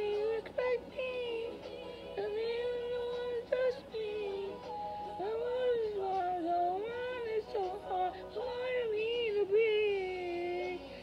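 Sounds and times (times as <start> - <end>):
woman singing a pop ballad: 0.0 - 11.0.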